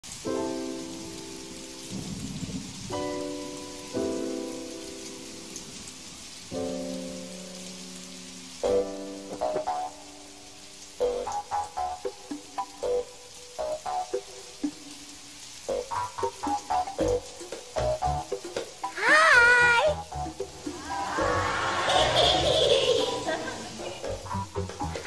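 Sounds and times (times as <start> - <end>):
steady rain: 0.0 - 25.0
soft music of held chords: 0.2 - 19.0.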